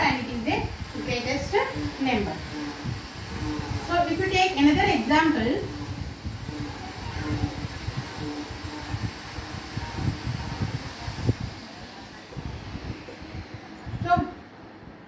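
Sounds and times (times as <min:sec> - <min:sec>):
low rumbling background noise: 0:00.0 - 0:15.0.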